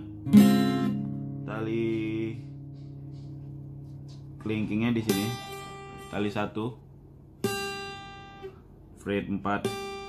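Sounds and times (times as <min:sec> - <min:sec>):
guitar note plucked: 0:00.0 - 0:06.4.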